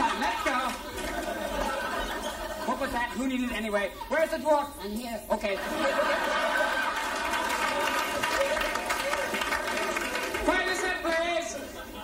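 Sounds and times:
audience noise: 0:00.0 - 0:04.8, 0:05.4 - 0:12.0.

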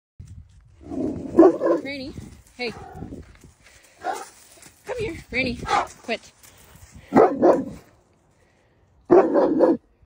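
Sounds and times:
dog barking and growling: 0:00.8 - 0:01.9, 0:05.6 - 0:06.0, 0:07.1 - 0:07.8, 0:09.1 - 0:09.9.

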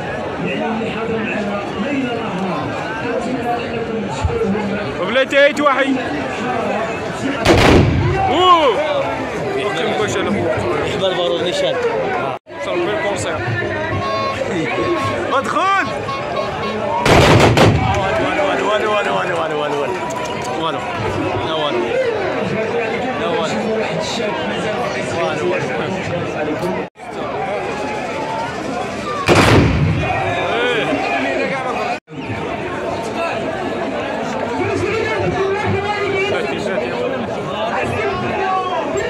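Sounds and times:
crowd voices: 0:00.0 - 0:39.0
muskets firing together: 0:07.4 - 0:08.3, 0:17.0 - 0:18.1, 0:29.2 - 0:30.2
rifle volley: 0:07.4 - 0:08.4, 0:17.0 - 0:18.3, 0:29.2 - 0:30.5.

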